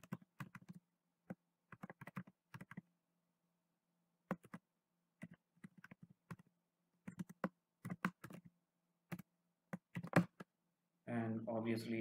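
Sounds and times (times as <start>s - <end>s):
computer keyboard typing: 0.0s - 2.9s, 4.3s - 8.5s, 9.1s - 10.5s.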